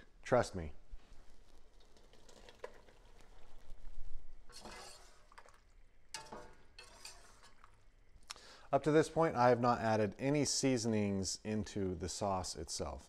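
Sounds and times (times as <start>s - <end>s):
metal utensil scraping pot: 4.5s - 5.5s, 6.1s - 7.8s.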